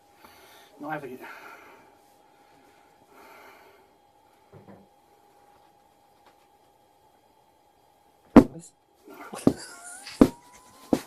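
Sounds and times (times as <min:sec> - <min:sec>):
thin wavering squeal: 0:09.6 - 0:11.0.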